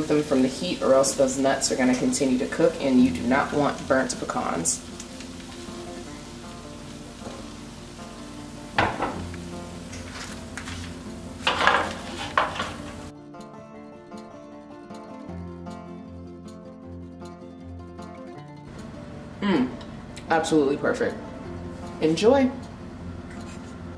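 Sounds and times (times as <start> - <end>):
soft background music: 0.0 - 23.9
spatula scraping skillet: 8.7 - 13.1, 23.3 - 23.9.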